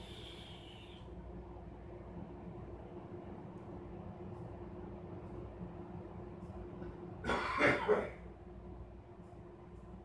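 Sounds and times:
low room hum: 0.0 - 10.0
woman coughing: 7.2 - 8.2.

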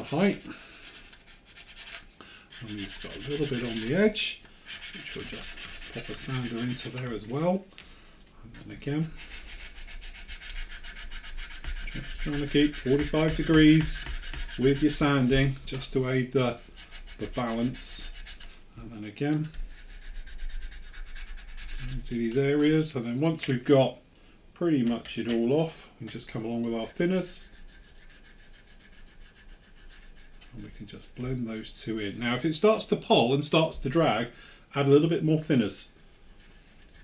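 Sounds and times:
sanding stick rubbing on plastic: 0.0 - 7.4, 9.0 - 18.6, 19.4 - 23.0, 26.6 - 30.6, 36.4 - 37.0.

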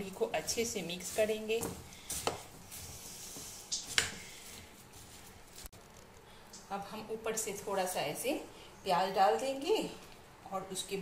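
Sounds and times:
puffed rice rustling: 0.0 - 6.3.

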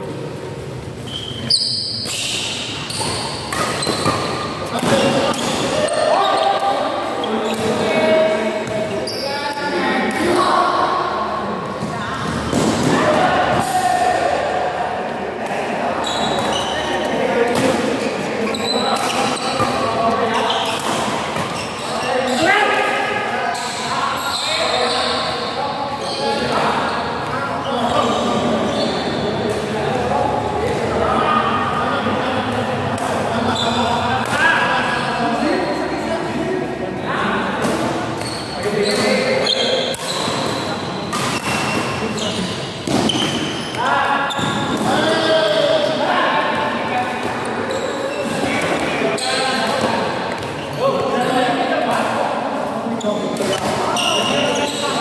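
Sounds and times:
people talking: 1.4 - 55.0.

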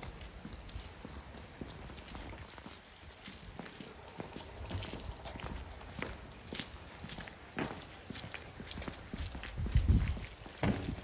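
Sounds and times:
footsteps on wet paving: 0.0 - 11.0.

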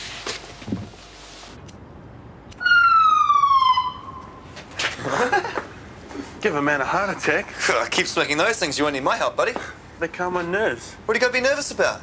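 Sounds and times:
ambulance siren blast: 2.6 - 4.5.

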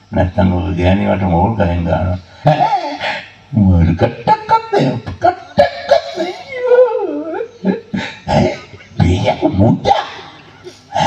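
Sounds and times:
wavering whining voice: 0.0 - 11.0.

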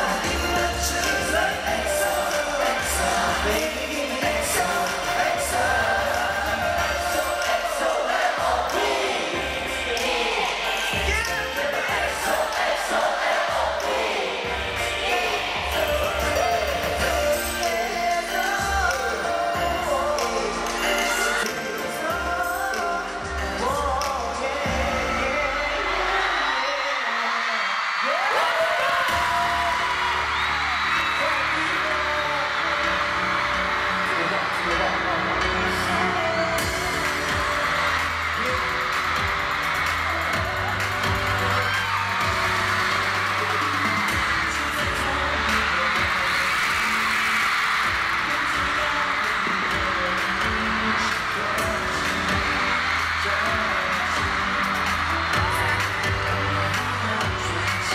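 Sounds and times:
group singing into microphones: 0.0 - 27.1, 32.5 - 57.9
fans cheering: 0.0 - 57.9
live pop concert music: 0.0 - 57.9.

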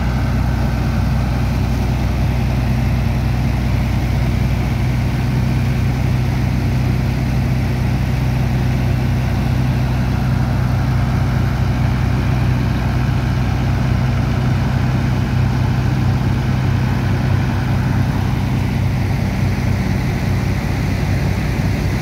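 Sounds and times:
pump engine droning: 0.0 - 22.0.

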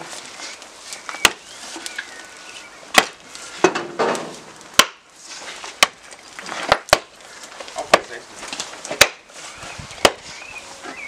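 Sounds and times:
wooden mallet striking iron: 4.8 - 5.0, 8.9 - 9.2.

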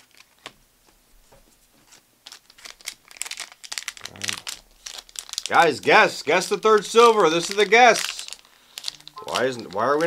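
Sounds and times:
foil pack crinkling: 0.0 - 0.6, 1.8 - 10.0.

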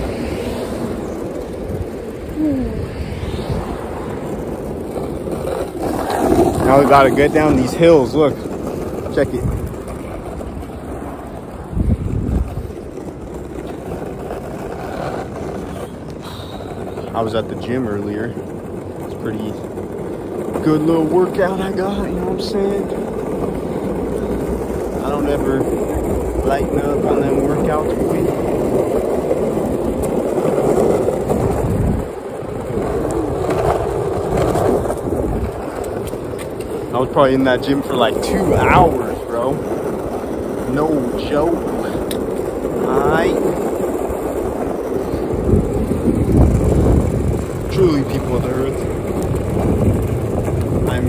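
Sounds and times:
wind on microphone: 0.0 - 13.4, 29.4 - 51.0
longboard wheels rumbling on asphalt: 0.0 - 51.0.

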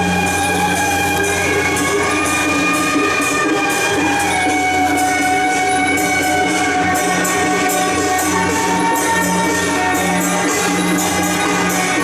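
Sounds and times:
wind instruments holding notes: 0.0 - 12.0.

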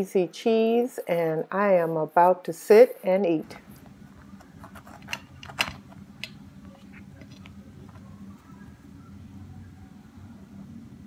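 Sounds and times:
low steady hum: 3.3 - 11.0.

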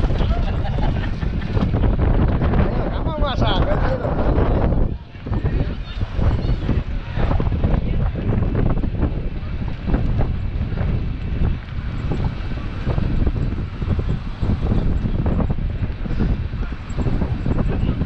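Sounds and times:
vehicle and road noise: 0.0 - 18.0
wind buffeting microphone: 0.0 - 18.0.

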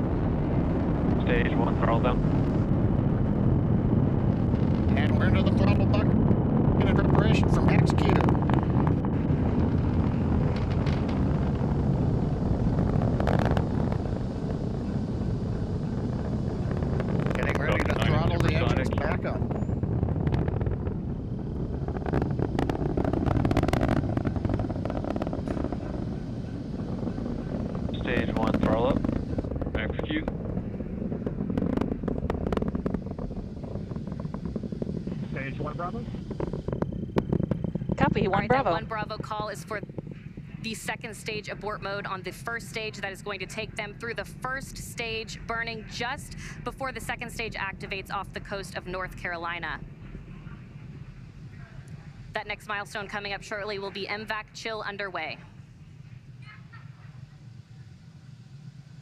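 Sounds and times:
rocket engines rumbling: 0.0 - 59.0.

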